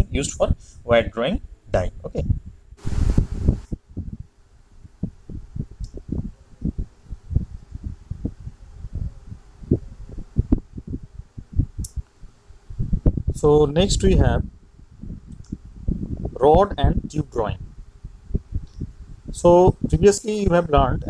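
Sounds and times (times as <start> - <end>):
dull low thumps: 1.7 - 21.0
rustling noise: 2.8 - 3.8.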